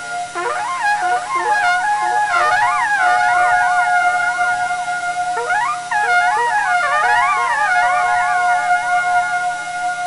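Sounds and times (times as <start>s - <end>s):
sliding electronic tones: 0.0s - 9.5s
held cornet note: 0.0s - 10.0s.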